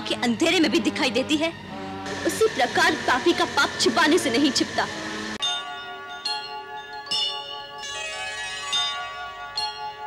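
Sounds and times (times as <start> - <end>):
bell-like chimes: 5.4 - 10.0.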